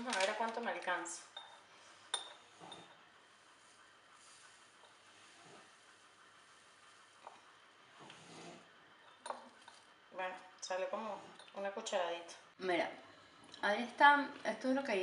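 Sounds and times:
glass clinks: 1.4 - 2.9.

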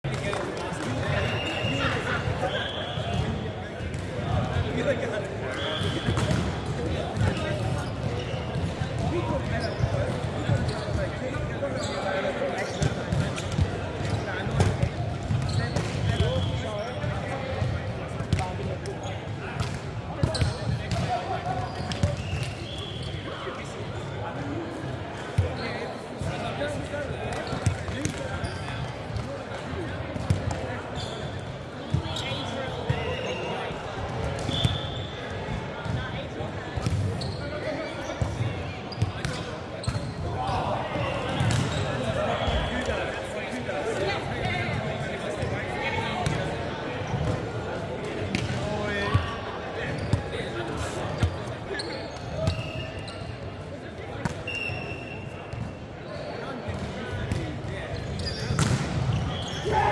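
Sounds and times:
players' voices echoing: 0.1 - 59.9
sneakers squeaking on hardwood: 36.9 - 37.6.

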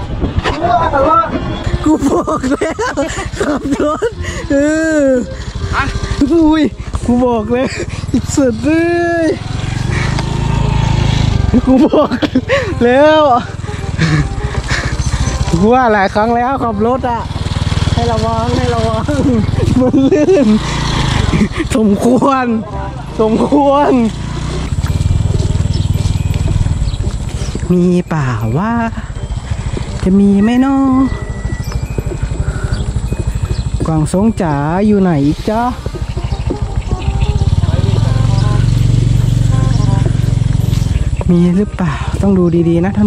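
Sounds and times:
motorcycle engine approaching: 0.0 - 43.0.

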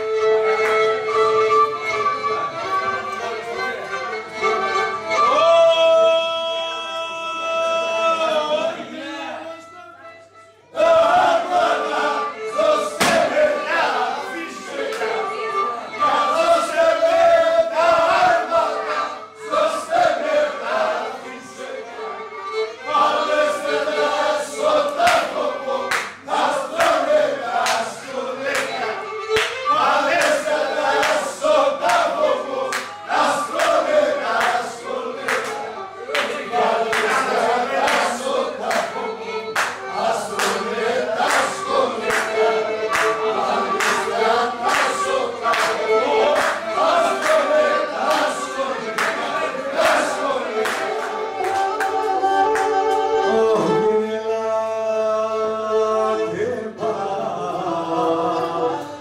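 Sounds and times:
voices singing together: 10.7 - 59.0.

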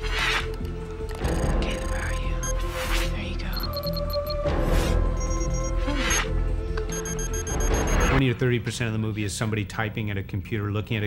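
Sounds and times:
rapid electronic computer beeps: 3.6 - 4.4, 6.9 - 8.2.

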